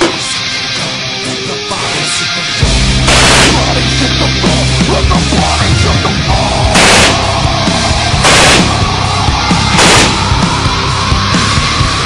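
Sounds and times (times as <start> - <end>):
heavy metal music: 0.0 - 12.0
rifle fire bursts: 3.1 - 3.9, 6.8 - 7.4, 8.2 - 8.9, 9.7 - 10.3.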